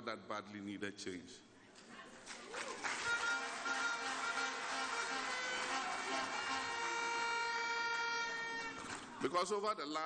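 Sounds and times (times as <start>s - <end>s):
buzzy horn note: 3.0s - 8.9s.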